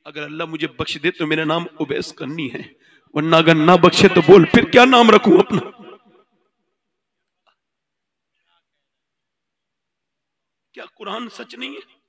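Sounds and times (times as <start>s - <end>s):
amplified man's voice echo: 0.0s - 6.2s, 10.8s - 12.0s.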